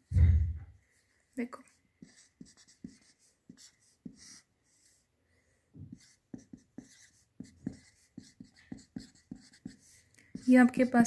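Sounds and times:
marker writing on paper: 0:01.6 - 0:05.1, 0:05.8 - 0:11.0.

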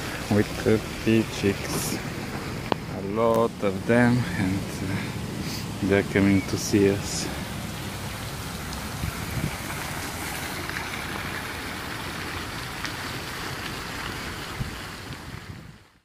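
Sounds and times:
wind rumbling on microphone: 0:00.0 - 0:10.2, 0:13.6 - 0:16.0.

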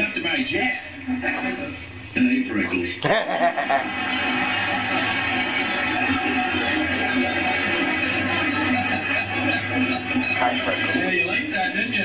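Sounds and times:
voices on television: 0:00.0 - 0:12.0
music underneath voices: 0:03.6 - 0:12.0.

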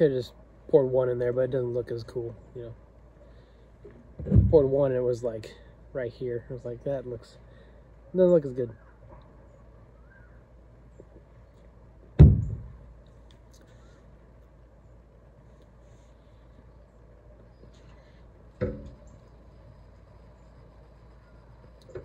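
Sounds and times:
heavy thud on wooden table: 0:12.2 - 0:12.8.

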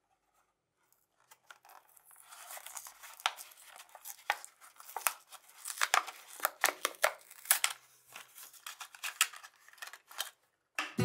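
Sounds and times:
plastic blister pack tearing open: 0:01.3 - 0:10.4.

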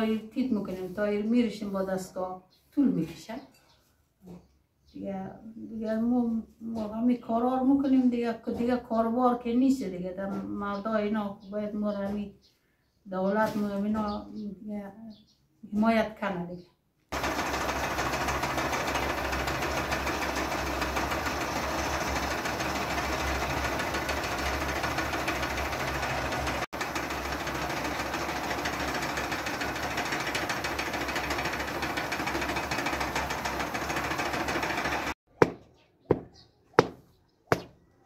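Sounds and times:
spinning machines humming and rattling: 0:17.1 - 0:35.2.

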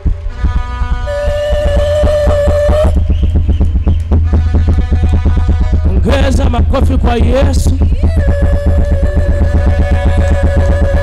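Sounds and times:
deep bass line: 0:00.0 - 0:11.0
electronic keyboard music: 0:00.0 - 0:11.0.

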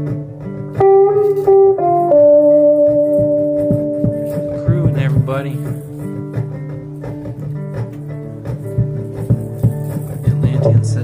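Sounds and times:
guitar music: 0:00.0 - 0:11.0.

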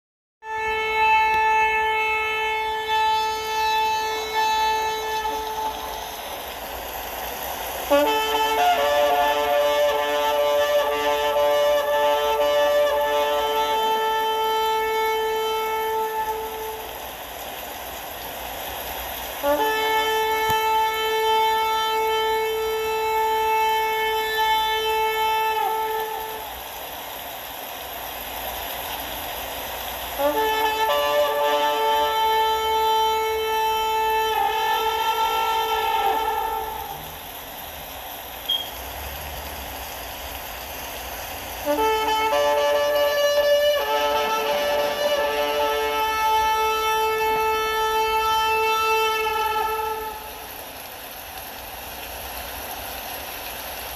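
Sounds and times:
shofar blasts: 0:00.4 - 0:07.1, 0:07.8 - 0:17.7, 0:19.2 - 0:26.7, 0:30.2 - 0:37.4, 0:41.6 - 0:50.8
steady hiss: 0:00.4 - 0:53.9.

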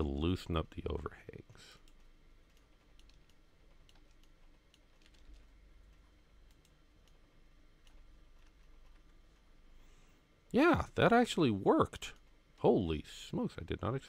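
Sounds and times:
computer keyboard clicks: 0:01.8 - 0:05.5
computer mouse clicks: 0:01.8 - 0:07.2.

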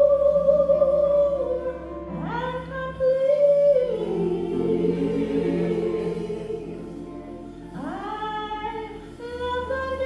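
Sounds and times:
women's gospel choir singing: 0:03.1 - 0:10.0.

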